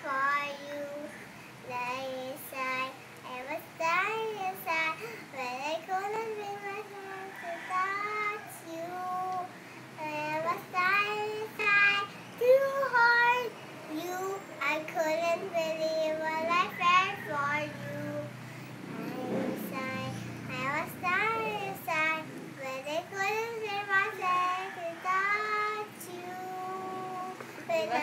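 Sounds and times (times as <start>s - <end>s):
girl singing: 0.0s - 28.0s.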